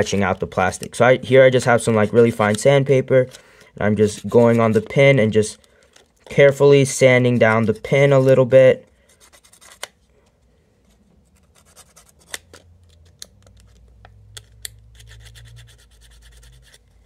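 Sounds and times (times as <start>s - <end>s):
sandpaper scratching on plastic: 4.0s - 4.9s, 14.9s - 16.8s.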